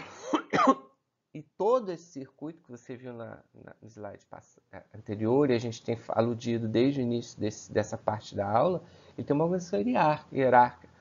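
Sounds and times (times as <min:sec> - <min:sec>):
man clearing his throat: 0:00.0 - 0:01.0.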